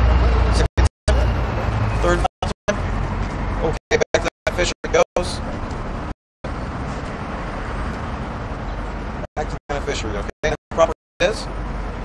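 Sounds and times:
city traffic: 0:00.0 - 0:12.0.

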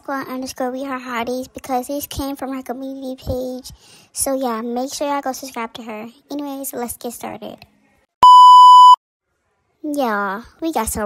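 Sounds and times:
high-pitched test tone beep: 0:08.2 - 0:09.0.

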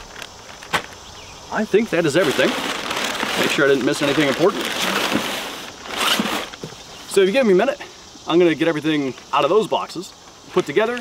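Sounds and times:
packing paper rustling: 0:02.0 - 0:06.8.

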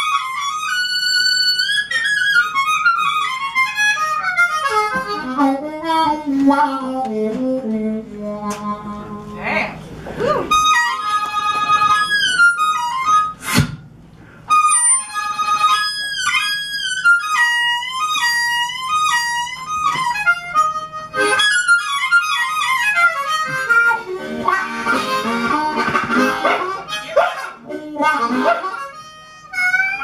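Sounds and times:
harmonica melody with bent notes: 0:00.0 - 0:09.3, 0:10.4 - 0:13.8, 0:14.4 - 0:30.0.

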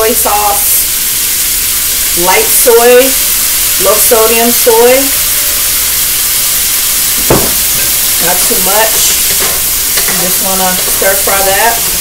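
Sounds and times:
food sizzling in a wok: 0:00.0 - 0:12.0
sauce pouring: 0:05.2 - 0:12.0
sharp knock: 0:07.2 - 0:07.9.

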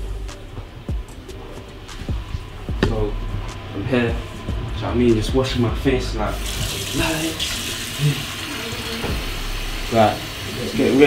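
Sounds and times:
water running from sink tap: 0:06.3 - 0:11.0
man washing face: 0:06.4 - 0:10.6.

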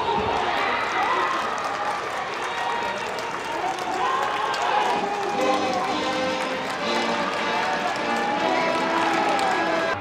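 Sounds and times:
stadium band music: 0:04.8 - 0:10.0
crowd chanting: 0:05.2 - 0:10.0.

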